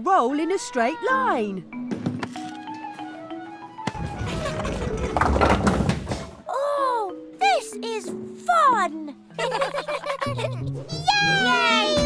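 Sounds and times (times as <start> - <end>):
light cartoon music: 0.0 - 5.6, 6.2 - 12.0
bowling ball rolling rumble: 3.9 - 6.3.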